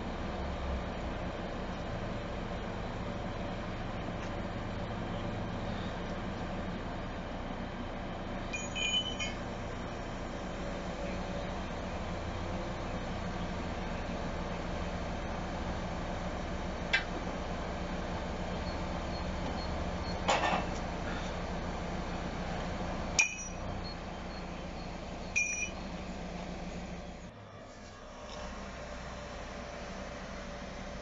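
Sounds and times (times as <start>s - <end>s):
diesel engine running: 0.0s - 31.0s.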